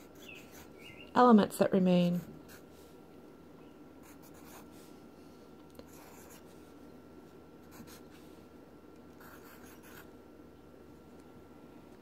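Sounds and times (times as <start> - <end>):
pencil scratching on paper: 0.0 - 0.7, 2.1 - 2.7, 4.0 - 4.9, 5.9 - 6.6, 7.6 - 8.2, 9.2 - 10.1.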